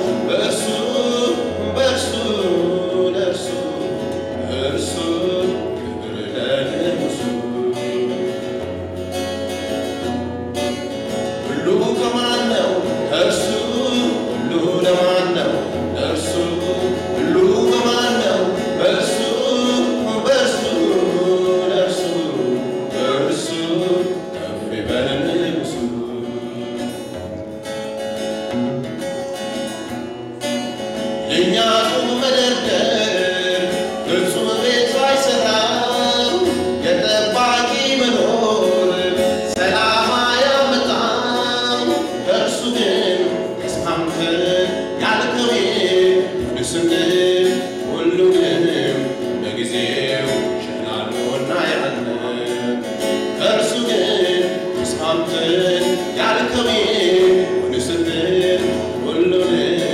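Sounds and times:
gospel worship singing: 0.0s - 9.0s, 11.4s - 27.2s, 31.2s - 59.9s.

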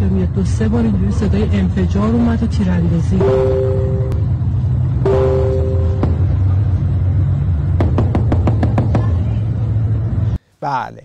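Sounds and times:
steady low city rumble: 0.0s - 11.0s
two-tone car horn: 3.2s - 4.2s, 5.0s - 6.1s.

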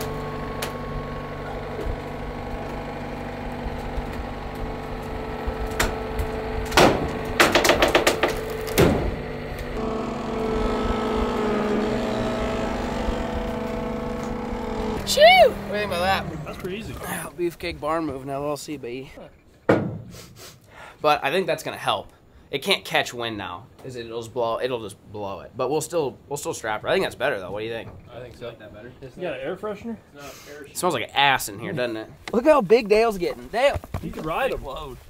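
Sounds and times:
diesel engine running: 0.0s - 17.3s
knocks and clanks: 3.5s - 15.1s, 19.6s - 20.1s, 27.7s - 28.2s.

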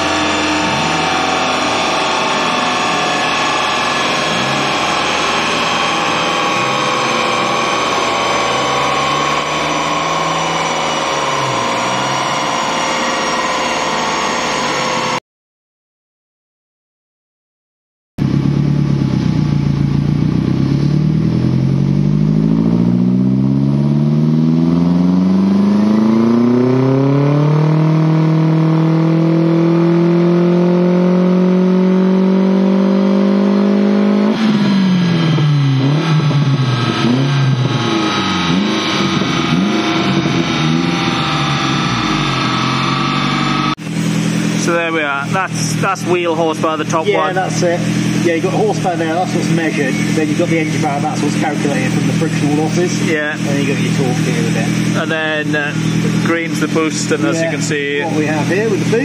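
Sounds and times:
turbocharged car engine revving: 0.0s - 15.2s, 18.2s - 59.0s.

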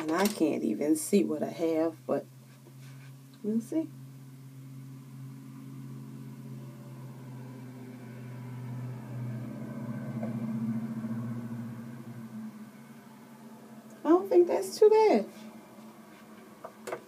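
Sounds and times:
low mechanical hum: 0.0s - 17.0s.

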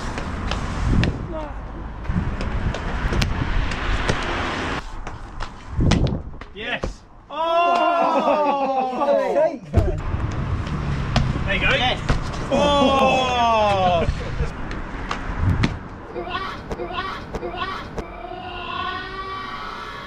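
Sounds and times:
street noise: 0.0s - 20.0s
landing thuds: 9.8s - 12.5s
person wavering vocal cry: 12.5s - 14.1s, 16.1s - 19.5s.

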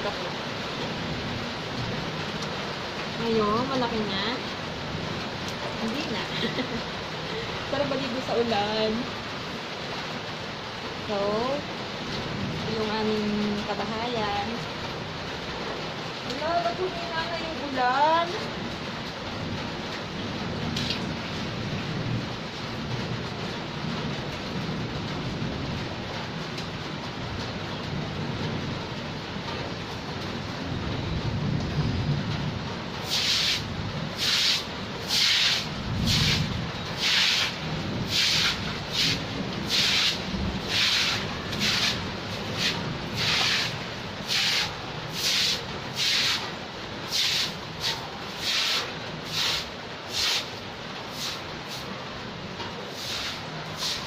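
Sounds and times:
rain on concrete: 0.0s - 54.0s.

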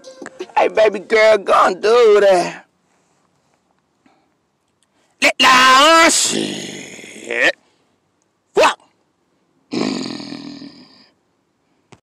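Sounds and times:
harsh raspy roar: 6.0s - 7.6s, 9.7s - 11.1s.

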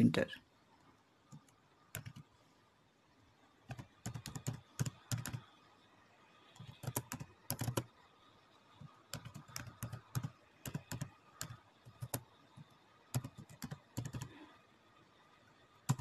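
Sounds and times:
keyboard typing: 1.3s - 2.2s, 3.7s - 5.5s, 6.6s - 7.9s, 8.9s - 14.4s.

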